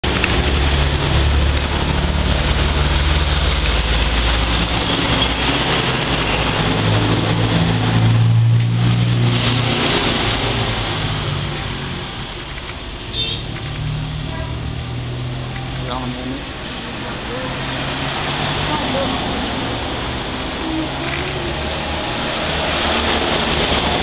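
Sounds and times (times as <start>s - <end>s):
outdoor background noise: 0.0s - 24.0s
vehicle engine humming: 0.0s - 24.0s.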